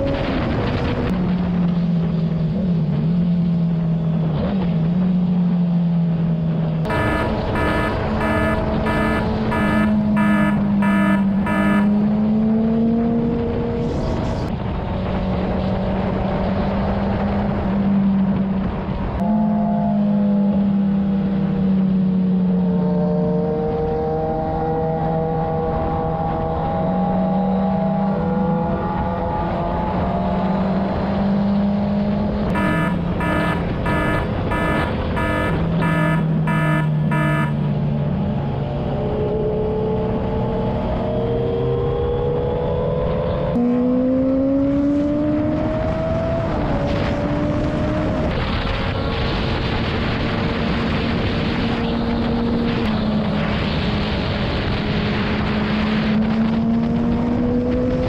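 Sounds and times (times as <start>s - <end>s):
motorcycle engine cruising: 0.0s - 48.3s
wind and road noise: 0.0s - 58.0s
electronic alert beeps: 6.9s - 12.0s, 32.5s - 37.6s.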